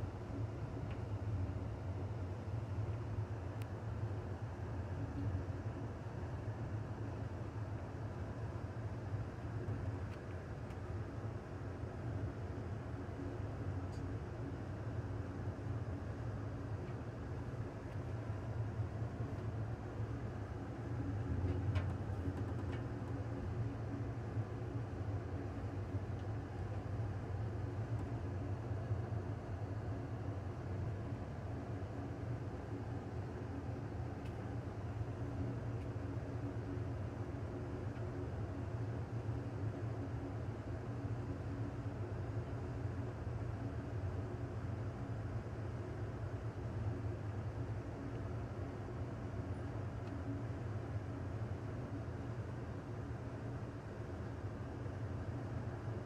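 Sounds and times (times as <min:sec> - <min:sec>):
train rumbling on track: 0:21.1 - 0:23.7.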